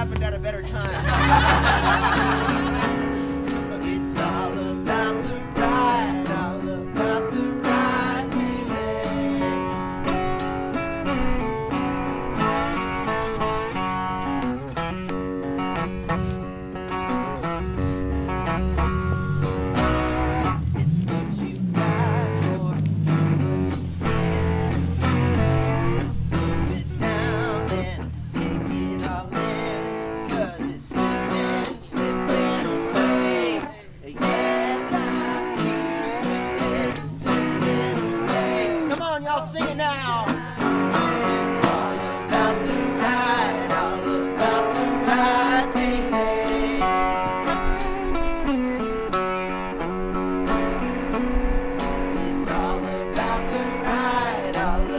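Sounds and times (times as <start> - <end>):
resonator guitar blues: 0.0 - 54.9
tambourine beat: 0.8 - 6.7, 7.6 - 9.6, 10.2 - 10.8, 11.7 - 13.4, 14.3 - 15.0, 15.8 - 16.3, 17.0 - 21.5, 22.4 - 22.7, 23.6 - 28.0, 29.0 - 33.4, 34.2 - 34.9, 35.6 - 38.8, 41.0 - 45.6, 46.4 - 46.9, 47.5 - 48.2, 49.1 - 49.7, 50.4 - 51.0, 51.7 - 54.9.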